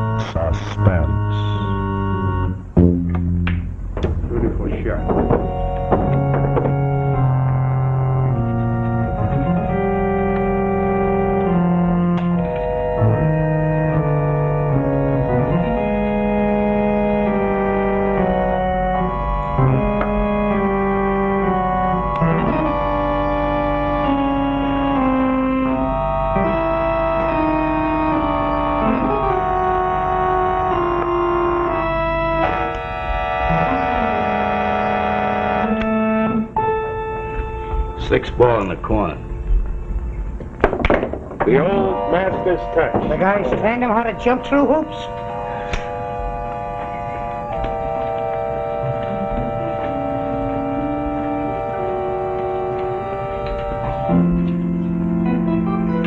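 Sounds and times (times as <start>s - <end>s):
organ chords: 0.0s - 56.0s.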